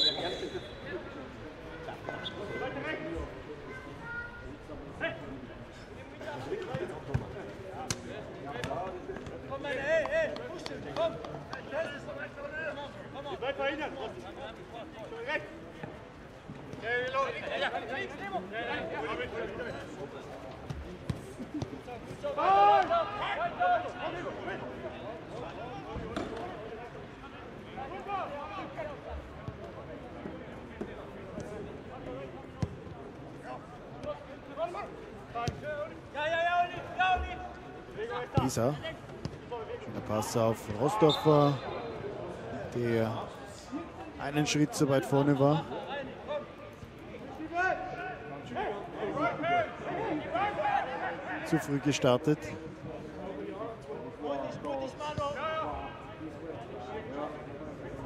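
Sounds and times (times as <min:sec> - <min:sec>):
footballers shouting: 0:00.0 - 0:03.4, 0:21.6 - 0:26.4, 0:47.3 - 0:51.8.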